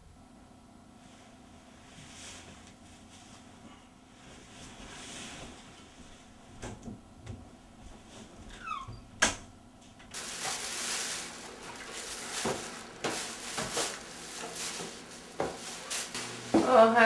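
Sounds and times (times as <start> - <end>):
bed squeak: 8.4 - 9.4
faint rustling: 9.9 - 16.8
steady hiss: 10.0 - 17.0.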